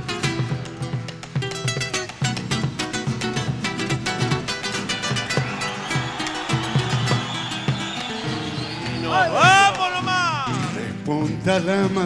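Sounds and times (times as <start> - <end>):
acoustic guitars strumming: 0.0 - 12.0.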